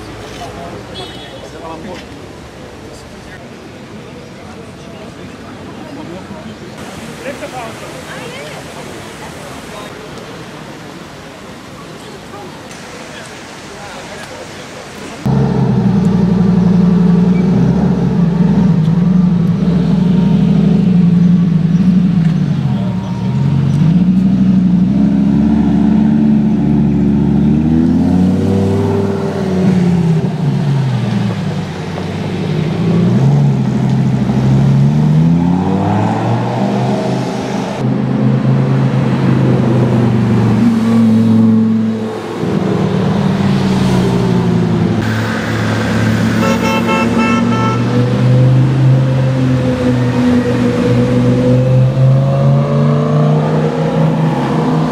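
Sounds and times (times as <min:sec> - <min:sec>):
car horn: 0:00.9 - 0:01.5, 0:46.3 - 0:48.0
car engine revving: 0:15.2 - 0:31.3, 0:32.1 - 0:54.9.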